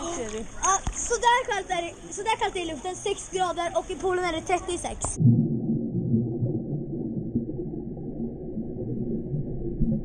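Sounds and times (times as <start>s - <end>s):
muffled underwater water rumble: 5.2s - 10.0s.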